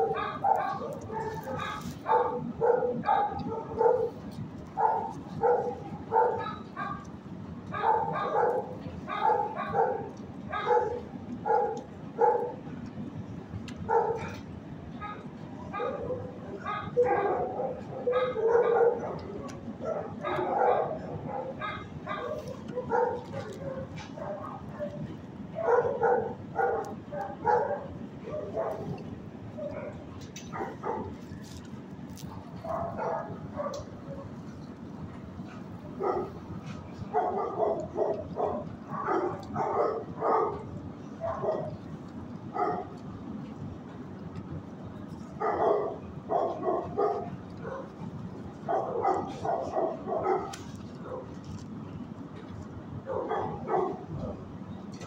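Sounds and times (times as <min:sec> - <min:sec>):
dogs barking: 0:00.0 - 0:12.7, 0:13.7 - 0:43.3, 0:45.0 - 0:51.7, 0:52.9 - 0:55.0
steady low hum: 0:00.0 - 0:55.0.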